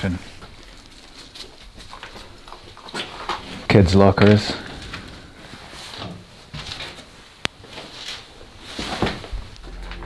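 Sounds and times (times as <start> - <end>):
faint footsteps: 0.0 - 10.0.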